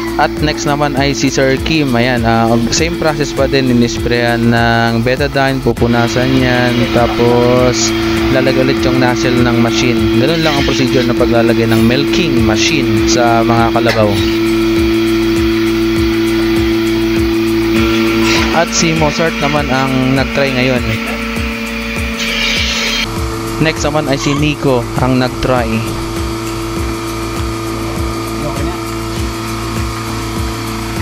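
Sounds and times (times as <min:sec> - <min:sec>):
milking machine motor hum: 0:00.0 - 0:31.0
pulsator low rhythmic pulse: 0:00.0 - 0:31.0.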